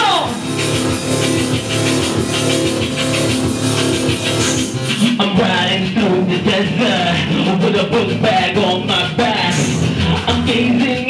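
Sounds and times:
drum beat: 0.0 - 11.0
live band playing punk-electronic: 0.0 - 11.0
person singing: 4.9 - 11.0.

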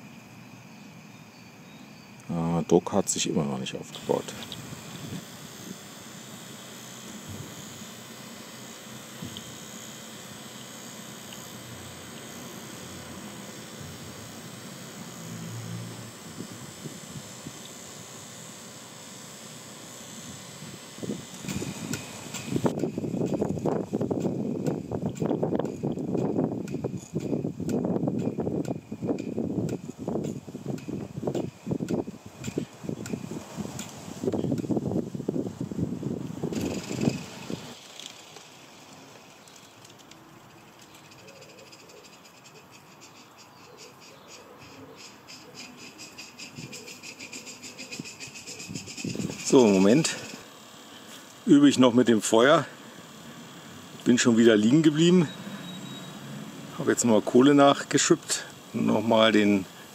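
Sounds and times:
steam blower hissing: 2.1 - 43.2, 43.8 - 59.9.

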